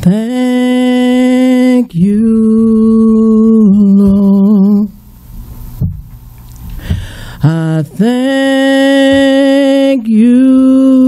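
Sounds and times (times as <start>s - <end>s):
woman singing a long note: 0.0s - 5.0s, 7.4s - 11.0s.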